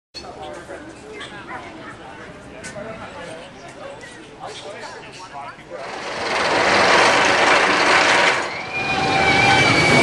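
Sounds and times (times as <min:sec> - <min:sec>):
roller coaster train roaring: 0:05.7 - 0:10.0.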